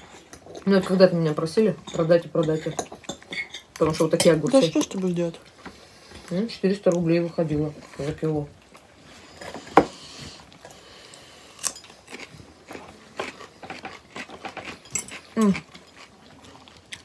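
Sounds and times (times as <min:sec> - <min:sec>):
close-up chewing with crunches: 0:10.3 - 0:17.0.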